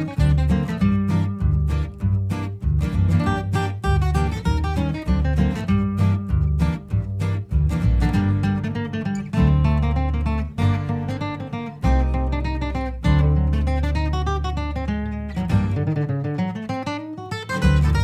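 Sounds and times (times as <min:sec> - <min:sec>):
acoustic guitar playing: 0:00.0 - 0:18.0.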